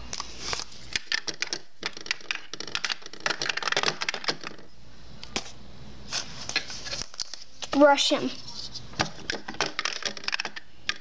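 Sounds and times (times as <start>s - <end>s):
plastic toy pieces clicking: 0.9s - 4.7s, 9.2s - 11.0s.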